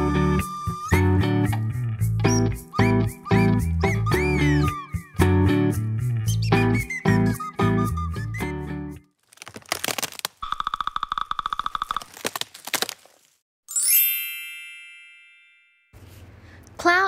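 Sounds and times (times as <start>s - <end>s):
cracking creaking clicks: 9.2s - 13.2s
bright chime: 13.7s - 16.0s.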